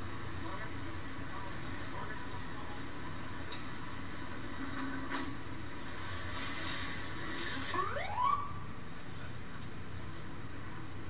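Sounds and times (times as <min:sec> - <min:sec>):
outdoor rumble and hiss: 0:00.0 - 0:11.0.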